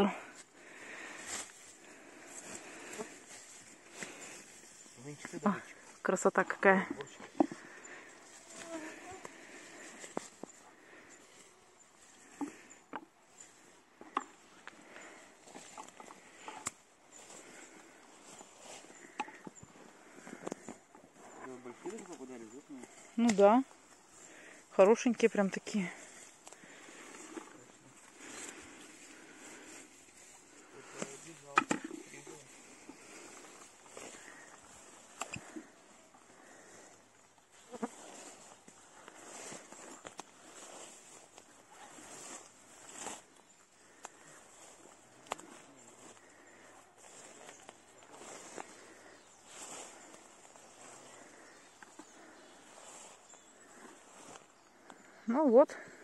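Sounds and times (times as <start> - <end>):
footsteps rustling through grass: 0.0 - 55.1.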